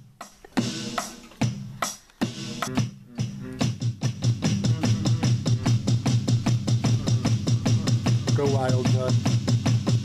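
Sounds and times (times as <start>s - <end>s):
electronic drum kit beat: 0.0s - 10.0s
pulsing low bass line: 4.4s - 8.4s.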